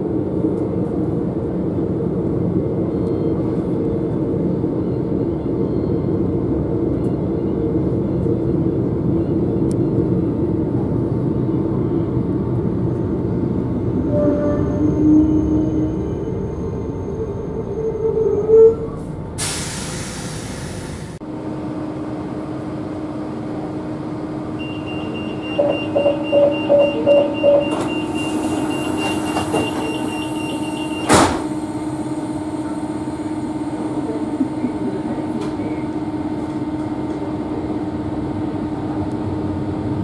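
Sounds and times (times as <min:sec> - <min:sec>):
electric train rumble: 0:00.0 - 0:40.0
brief louder tone: 0:24.6 - 0:31.0
rapid high warning beep: 0:24.6 - 0:31.1
train doors shutting knock: 0:24.6 - 0:31.6.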